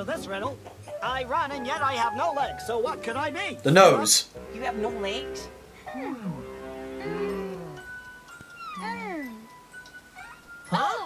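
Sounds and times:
held hum-like tone: 4.4s - 9.5s.

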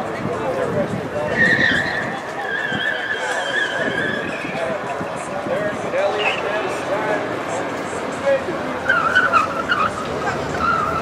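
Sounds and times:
tyres squealing: 1.3s - 4.9s, 8.7s - 11.0s.

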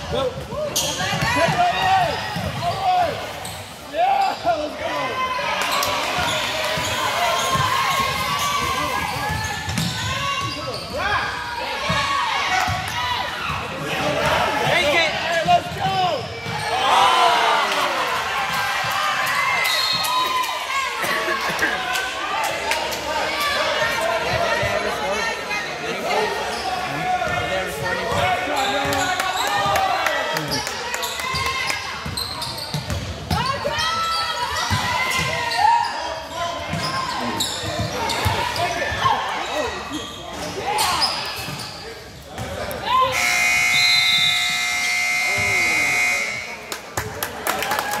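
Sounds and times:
scoreboard buzzer: 43.1s - 46.6s.

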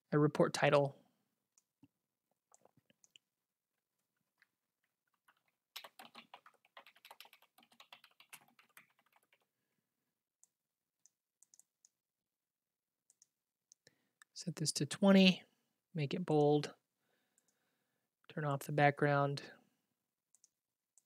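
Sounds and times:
faint typing on computer keyboard: 4.0s - 9.7s, 10.4s - 12.0s, 13.0s - 13.9s, 17.3s - 17.6s, 20.3s - 21.0s.

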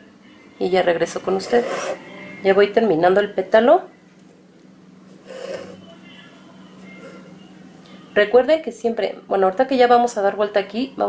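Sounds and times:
steady low hum: 0.0s - 11.0s
thread rubbing through fabric: 1.2s - 2.1s, 5.2s - 5.9s.

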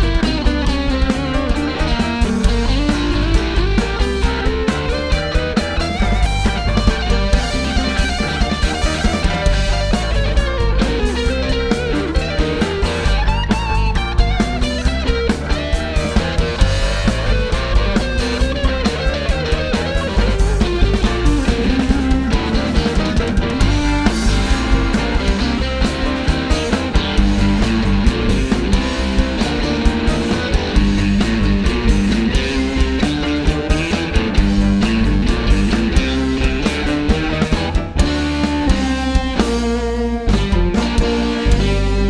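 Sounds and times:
bass: 0.0s - 42.0s
drum kit beat: 0.0s - 42.0s
electric guitar bends: 0.0s - 42.0s
keyboard: 0.0s - 42.0s.

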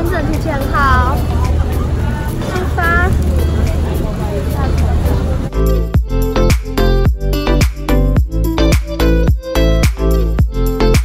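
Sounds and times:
women talking: 0.0s - 5.5s
background music with beat: 0.0s - 11.0s.

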